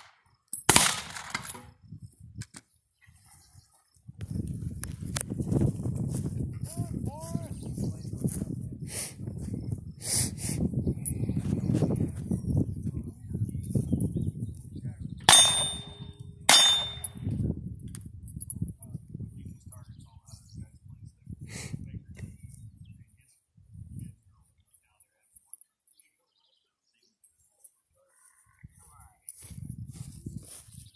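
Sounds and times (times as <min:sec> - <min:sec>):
sharp gunshots: 0:00.7 - 0:01.6, 0:15.3 - 0:17.2
wind rumbling on microphone: 0:01.4 - 0:24.6, 0:28.5 - 0:30.9
movement noise: 0:02.4 - 0:14.7
steel target ringing: 0:15.3 - 0:17.2.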